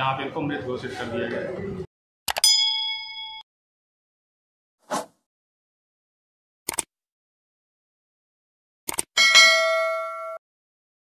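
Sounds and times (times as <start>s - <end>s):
bell ding: 2.4s - 3.4s, 9.2s - 10.4s.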